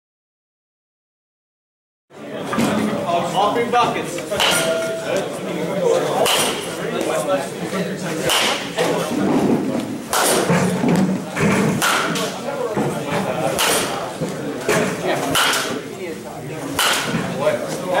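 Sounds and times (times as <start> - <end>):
baseball bat hitting balls: 4.3 - 5.2, 6.1 - 7.2, 8.2 - 9.4, 10.1 - 15.9, 16.6 - 17.8.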